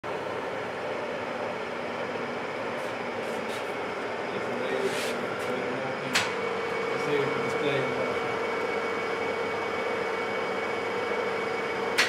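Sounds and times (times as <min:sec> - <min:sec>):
milling machine humming: 0:00.0 - 0:12.0.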